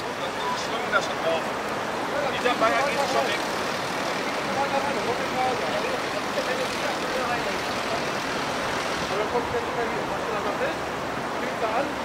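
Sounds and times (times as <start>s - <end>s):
river rushing: 0.0s - 12.0s.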